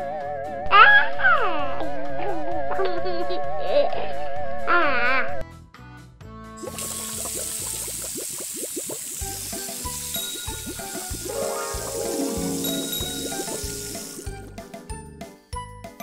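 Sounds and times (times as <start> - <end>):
water pouring and splashing: 6.6 - 14.7
background music with beat: 9.2 - 16.0.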